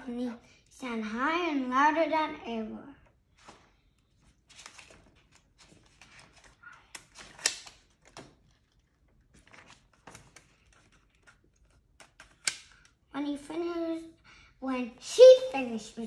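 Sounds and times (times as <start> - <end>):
book pages rustling: 3.3 - 13.0.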